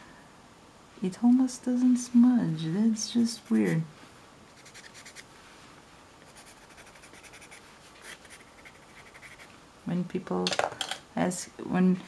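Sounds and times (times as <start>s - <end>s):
pencil scratching on paper: 4.6s - 5.2s, 6.2s - 9.5s.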